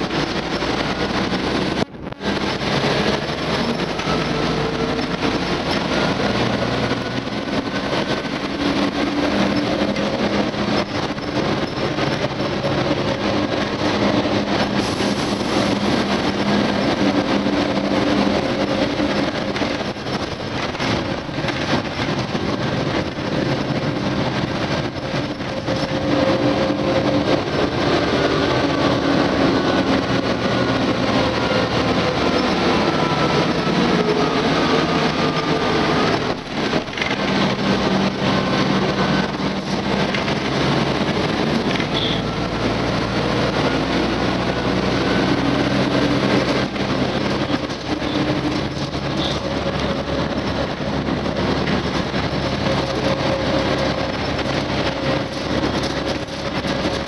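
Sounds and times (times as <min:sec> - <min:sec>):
bus engine and road noise: 0:00.0 - 0:57.0.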